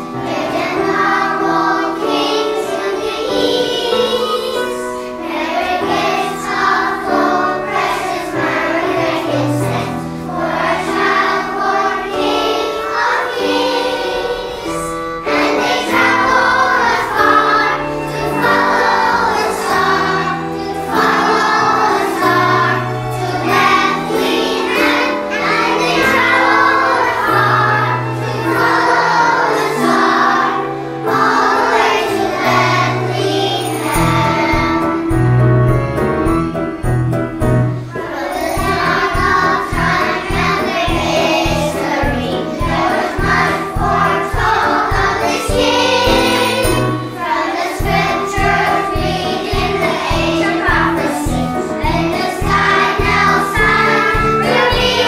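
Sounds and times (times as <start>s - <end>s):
children's choir singing: 0.0s - 55.0s
instrumental accompaniment: 0.0s - 55.0s.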